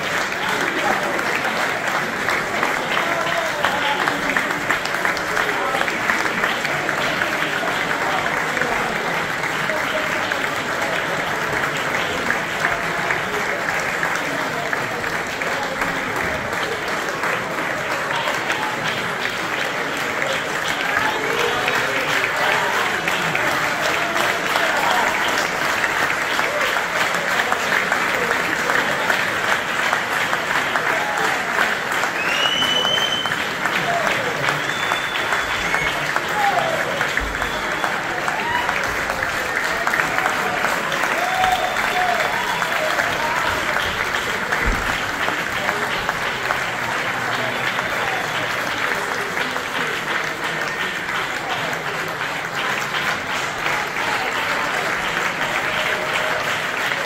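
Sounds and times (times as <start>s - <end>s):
audience applauding: 0.0s - 57.0s
voices in crowd: 0.0s - 57.0s
high whistles: 32.2s - 33.4s.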